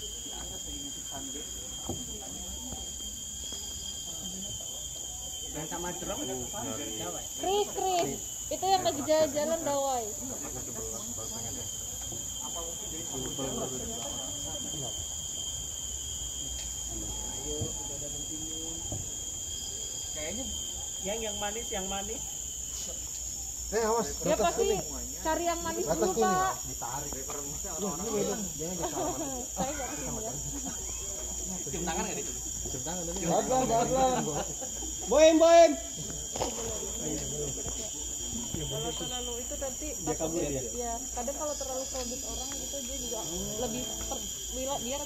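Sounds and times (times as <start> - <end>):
people talking: 0.0 - 15.4, 16.3 - 19.3, 20.0 - 23.0, 23.7 - 45.0
high-pitched insect chorus: 0.0 - 45.0
thin lower insect tone: 0.0 - 45.0.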